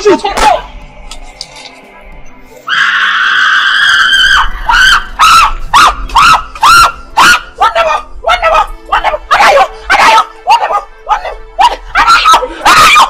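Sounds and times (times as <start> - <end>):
background music: 0.0 - 13.0
loud scream: 2.7 - 8.1, 11.6 - 13.0
wailing cries: 2.7 - 13.0.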